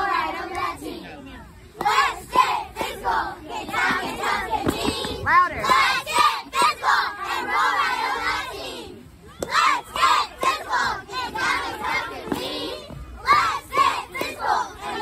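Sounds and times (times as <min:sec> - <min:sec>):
girls chanting a cheer: 0:00.0 - 0:01.0, 0:01.8 - 0:15.0.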